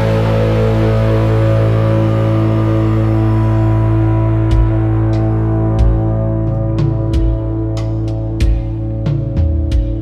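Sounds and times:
band holding sustained chord: 0:00.0 - 0:09.8.

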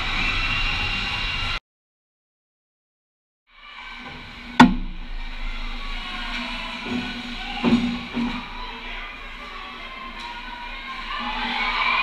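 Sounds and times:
ice rink ambience: 0:00.0 - 0:01.6, 0:03.6 - 0:12.0.

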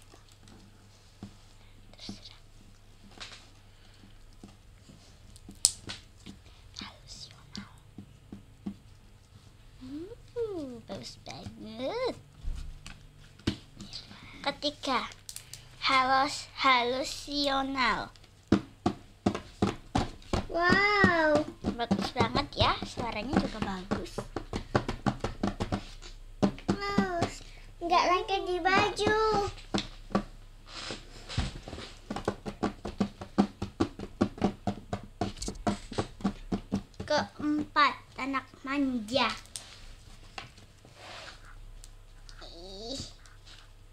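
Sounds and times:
small clicking pops: 0:05.4 - 0:06.0, 0:15.1 - 0:15.6
child's voice: 0:06.8 - 0:07.8, 0:09.8 - 0:12.2, 0:13.8 - 0:15.2, 0:15.8 - 0:18.2, 0:20.5 - 0:24.2, 0:26.7 - 0:29.6, 0:37.1 - 0:39.5, 0:42.3 - 0:43.2
slime squelching: 0:17.0 - 0:31.2.

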